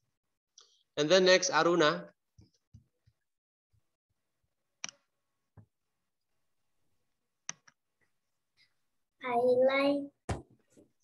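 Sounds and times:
computer mouse clicks: 4.8s - 5.0s, 7.4s - 7.8s.

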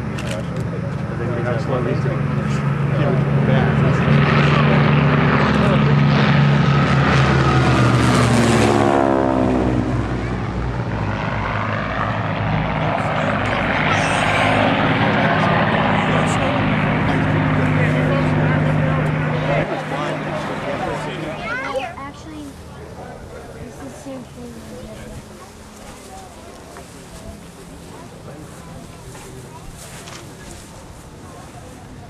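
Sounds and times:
propeller planes droning past: 0.0s - 32.0s.

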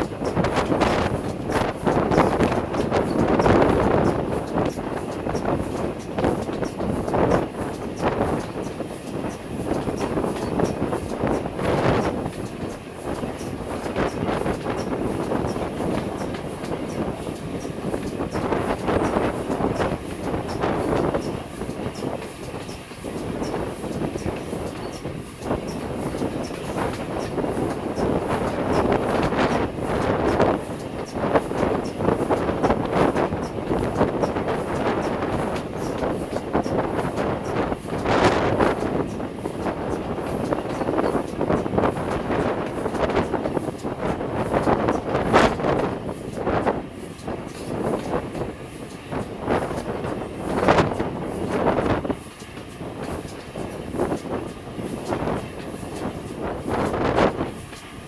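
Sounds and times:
steam locomotive running: 0.0s - 58.0s
wheels clattering on track: 0.0s - 58.0s.

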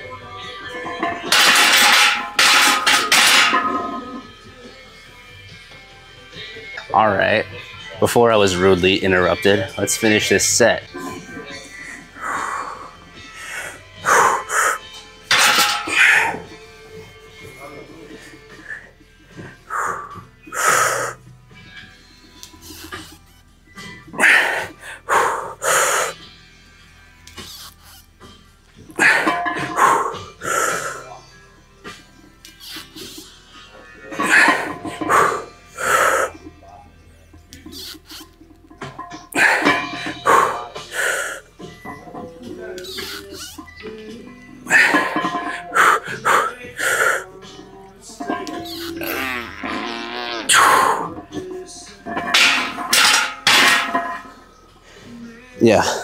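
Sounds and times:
faint background music: 0.0s - 56.0s.

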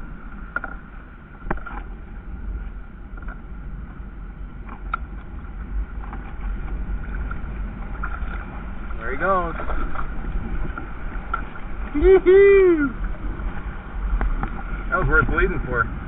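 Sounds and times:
water lapping at a kayak: 0.0s - 16.0s
wind rumble on microphone: 0.0s - 16.0s.

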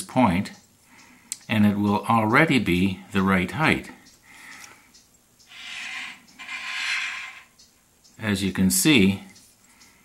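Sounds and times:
person breathing: 4.2s - 5.0s.

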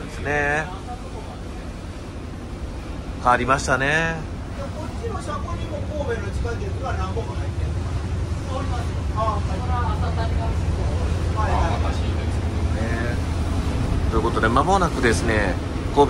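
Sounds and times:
bus diesel engine rumble: 0.0s - 16.0s
passengers talking quietly: 0.0s - 16.0s
road noise: 0.0s - 16.0s.

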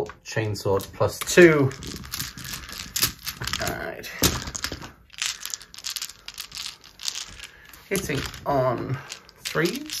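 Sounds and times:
dice clattering in a tray: 0.8s - 10.0s.

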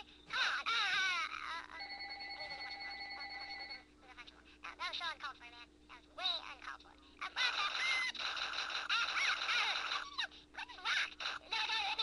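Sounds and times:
fluttering electronic ringing tone: 1.8s - 3.8s.

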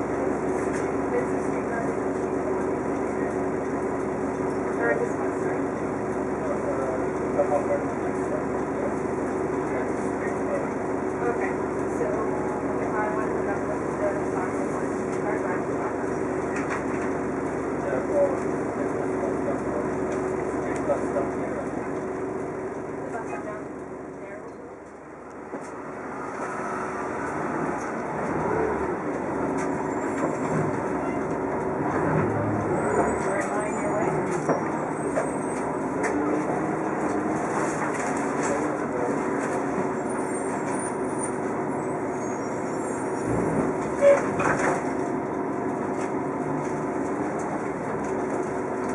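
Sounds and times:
bus engine and road noise: 0.0s - 48.9s.

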